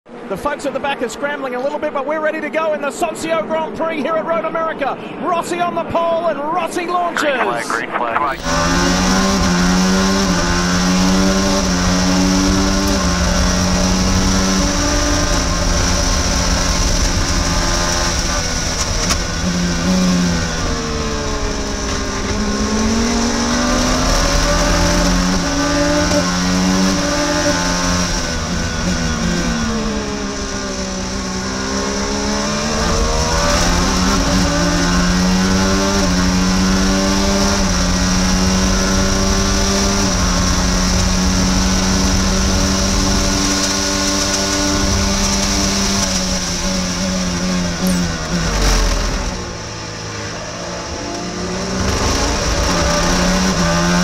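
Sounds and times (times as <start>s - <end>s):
race car engine: 0.1s - 54.0s.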